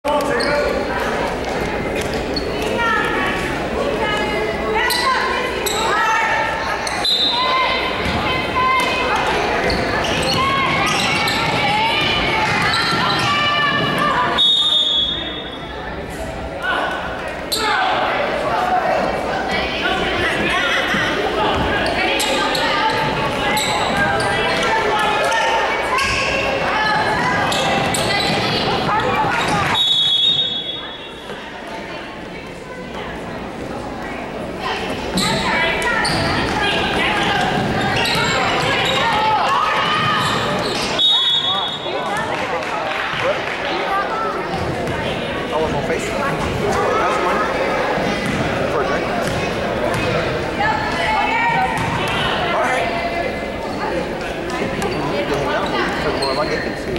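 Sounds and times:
people calling out in gym: 0:00.0 - 0:33.1, 0:34.6 - 0:56.9
referee whistle: 0:07.0 - 0:07.5, 0:14.4 - 0:15.5, 0:29.7 - 0:31.1, 0:40.7 - 0:42.0
basketball bouncing: 0:48.2 - 0:48.5, 0:49.2 - 0:50.2.

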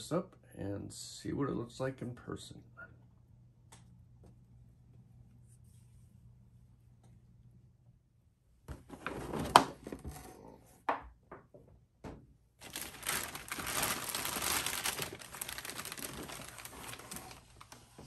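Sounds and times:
plastic bag crinkling: 0:12.6 - 0:18.0.

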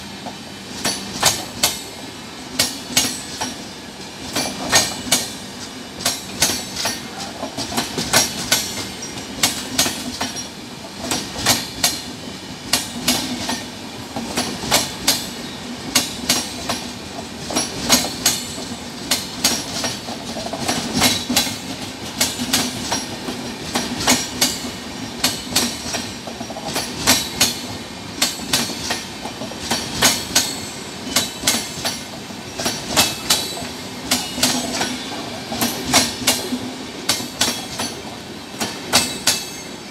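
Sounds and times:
train rumble: 0:00.0 - 0:39.9
train wheels clicking over rail joints: 0:00.0 - 0:39.9.

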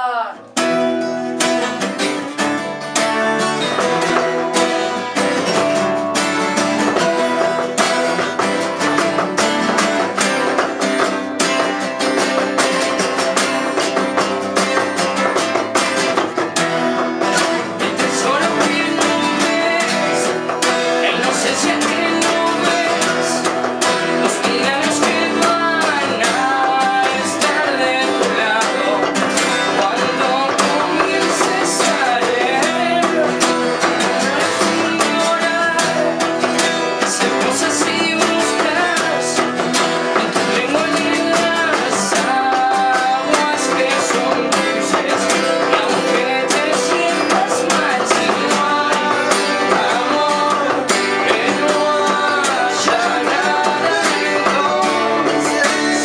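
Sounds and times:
acoustic guitars strumming: 0:00.0 - 0:56.0
person singing: 0:00.0 - 0:56.0.

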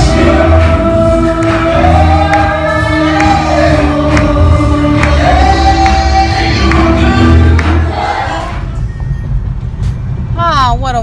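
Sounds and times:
church choir singing: 0:00.0 - 0:08.8.

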